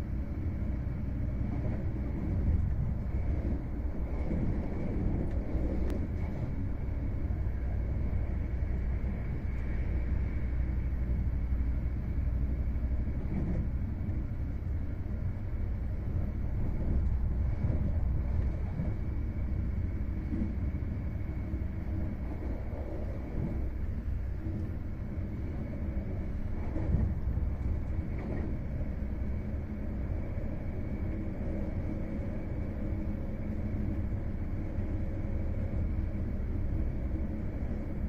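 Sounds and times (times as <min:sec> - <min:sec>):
train wheels rumbling on rails: 0:00.0 - 0:38.0.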